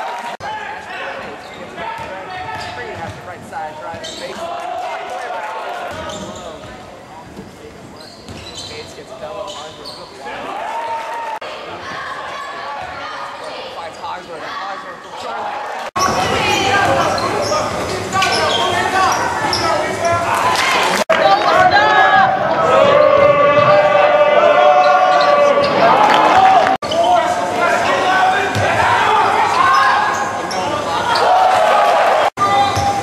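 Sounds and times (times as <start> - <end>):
crowd voices: 0.0 - 33.0
basketball bouncing on court: 2.0 - 4.2
people shouting: 20.3 - 30.2.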